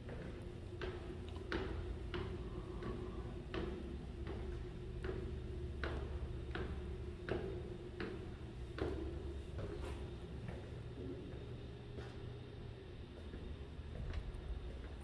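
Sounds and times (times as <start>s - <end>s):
footsteps climbing stairs: 0.0s - 12.2s
low hum: 0.0s - 15.0s.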